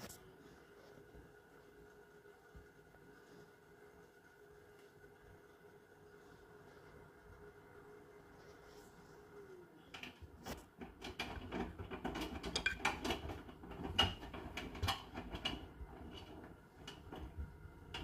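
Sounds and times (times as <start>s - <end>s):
washing machine motor hum: 0.0s - 18.0s.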